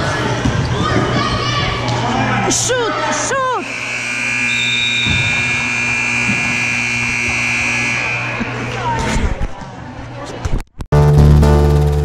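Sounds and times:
crowd background noise: 0.0s - 11.9s
scoreboard buzzer: 3.6s - 8.7s.

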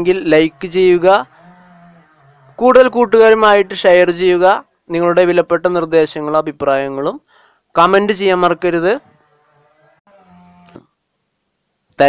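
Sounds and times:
person speaking: 0.0s - 1.3s.

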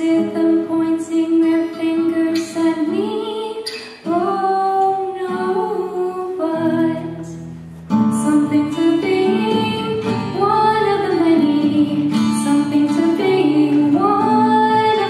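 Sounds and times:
woman singing: 0.0s - 7.4s, 8.0s - 15.0s
acoustic guitar: 0.0s - 15.0s.

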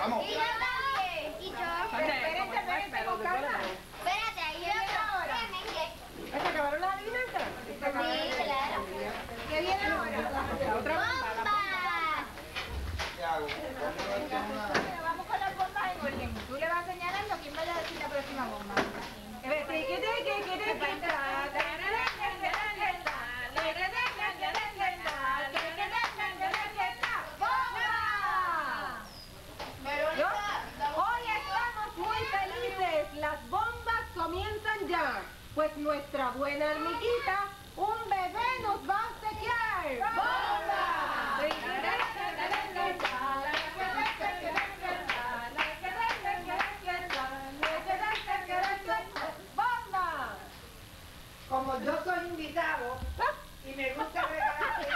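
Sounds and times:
voices calling out and singing: 19.4s - 35.5s, 36.6s - 50.3s
people clapping in rhythm: 20.3s - 27.6s, 41.4s - 49.4s.

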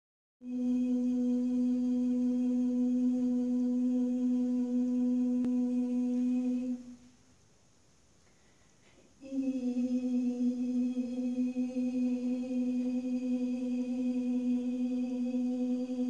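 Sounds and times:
person humming a long note: 0.4s - 7.0s, 9.2s - 16.0s.

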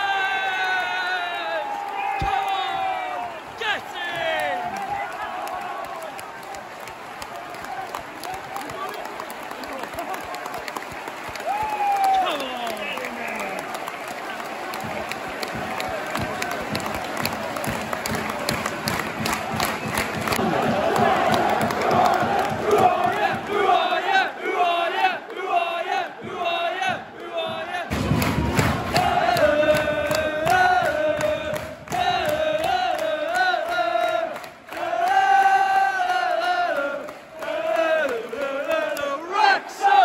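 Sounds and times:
stadium crowd singing: 2.2s - 8.3s, 13.8s - 40.0s
hand clapping: 4.0s - 23.6s, 27.9s - 39.2s
long falling shout: 11.4s - 12.4s.

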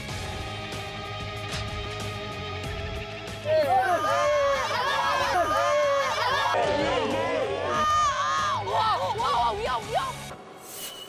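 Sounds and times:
background music sustained tones: 0.0s - 11.0s
people shouting and screaming: 3.4s - 10.2s.

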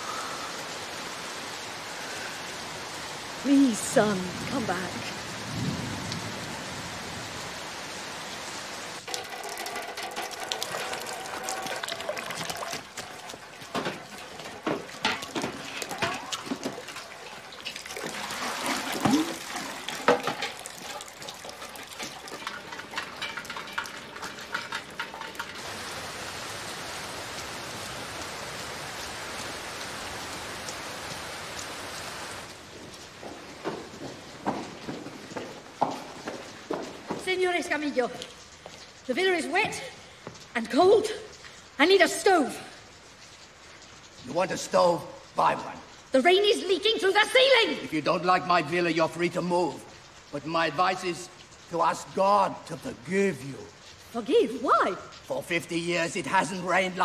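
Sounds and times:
heavy rain: 0.0s - 57.0s
sharp drips and knocks: 8.9s - 57.0s.

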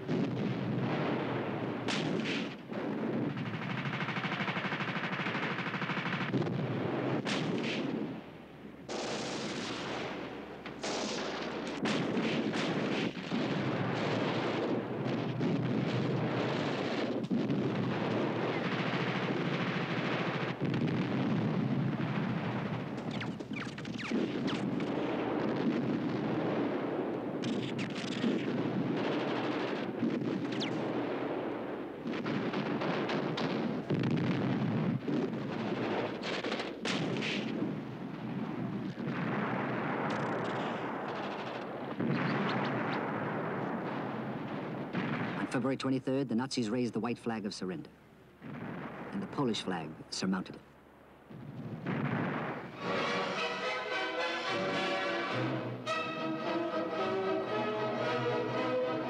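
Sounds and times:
machine-gun fire: 0.0s - 8.2s, 8.9s - 37.8s, 38.9s - 45.5s
gunfire: 0.0s - 45.7s, 51.6s - 59.0s
explosions: 0.0s - 45.9s, 48.4s - 50.5s, 51.3s - 59.0s.

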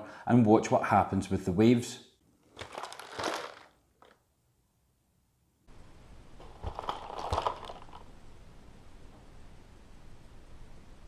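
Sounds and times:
plastic bottle crinkling: 2.4s - 4.2s, 6.4s - 8.1s
water sloshing over gravel in bottle: 2.6s - 4.1s.

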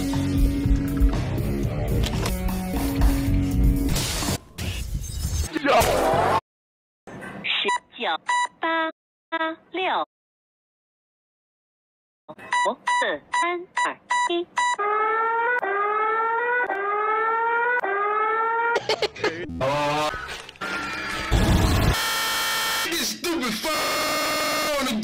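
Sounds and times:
short electronic beeps: 7.7s - 8.6s, 12.4s - 14.8s
rising alarm tone: 14.6s - 18.8s.

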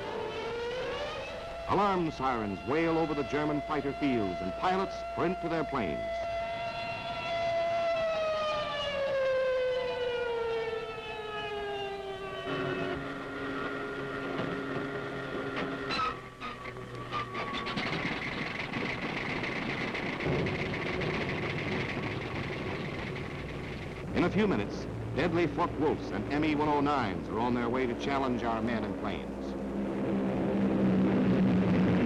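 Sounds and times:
air raid siren wailing: 0.0s - 32.0s
aircraft engines running: 0.0s - 32.0s.

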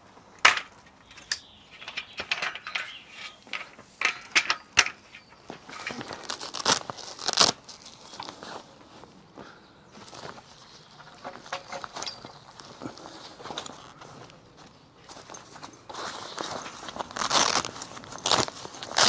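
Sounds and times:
frame clicks and knocks: 0.4s - 6.0s, 11.1s - 12.3s
fabric rustling and crinkling: 5.4s - 19.0s.

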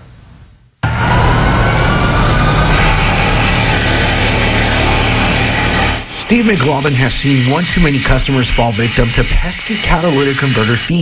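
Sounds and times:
vehicle engine running: 0.8s - 9.8s
high hiss: 0.8s - 11.0s.

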